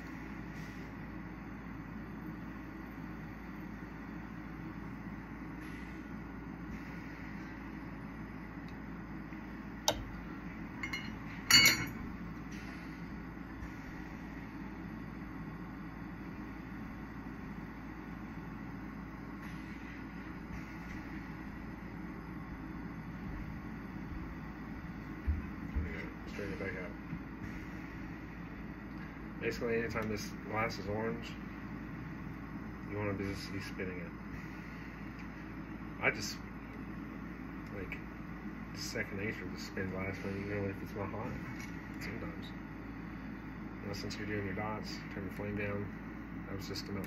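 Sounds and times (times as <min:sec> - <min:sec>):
torch flame hissing: 0:00.0 - 0:11.4, 0:12.1 - 0:47.0
glass clinking: 0:10.8 - 0:12.0.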